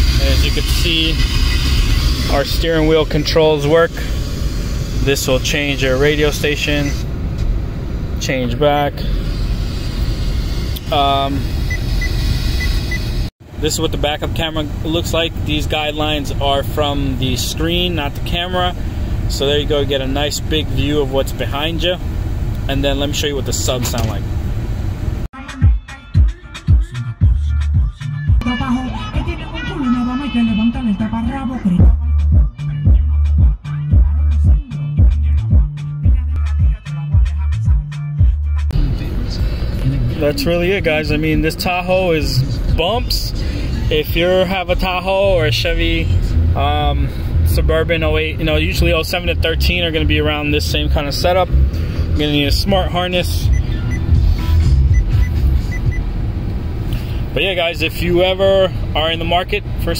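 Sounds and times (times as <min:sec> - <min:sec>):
hip hop music with heavy bass: 0:00.0 - 0:07.1, 0:25.4 - 0:56.0
low rumble: 0:00.0 - 0:25.3, 0:27.2 - 0:57.6.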